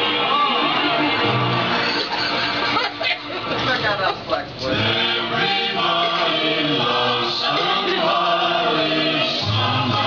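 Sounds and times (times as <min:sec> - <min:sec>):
people talking: 0:02.0 - 0:10.0.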